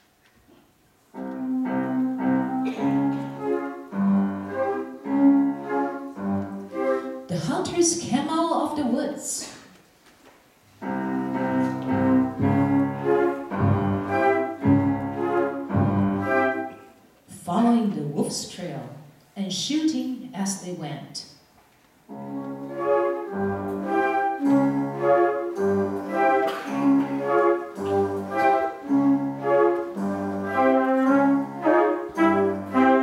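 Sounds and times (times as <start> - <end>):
flute saxophone and clarinet chords: 1.1 - 7.3, 10.8 - 17.0, 22.1 - 33.0.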